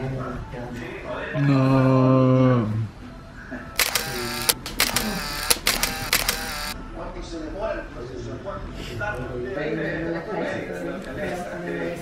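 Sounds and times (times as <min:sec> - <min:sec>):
camera shutter clicking: 0:03.8 - 0:06.8.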